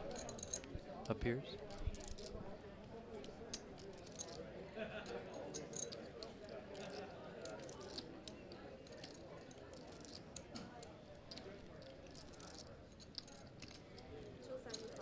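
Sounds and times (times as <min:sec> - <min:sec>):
murmur of voices: 0:00.0 - 0:15.0
poker chips clicking: 0:00.1 - 0:02.4, 0:03.2 - 0:04.4, 0:05.6 - 0:15.0.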